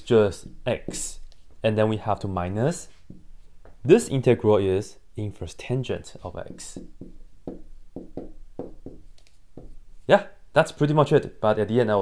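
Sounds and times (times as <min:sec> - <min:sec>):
marker writing on whiteboard: 0:00.3 - 0:01.7, 0:06.1 - 0:10.1.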